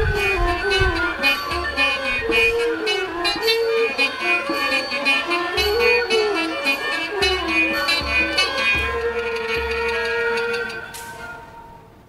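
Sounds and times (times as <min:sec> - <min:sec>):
string ensemble playing: 0:00.0 - 0:12.0.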